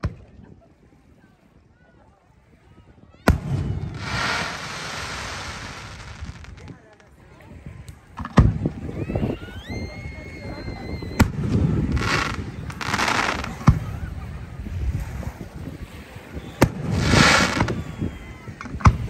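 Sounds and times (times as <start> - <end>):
fireworks bangs: 3.2 - 7.0, 11.1 - 14.2, 16.3 - 19.0
fireworks hissing and crackling: 3.3 - 7.2, 11.0 - 19.0.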